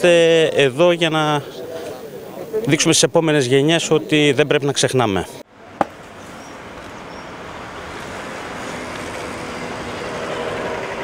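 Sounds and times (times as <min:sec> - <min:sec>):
road traffic noise: 0:05.3 - 0:11.0
faint engine hum: 0:05.5 - 0:11.0.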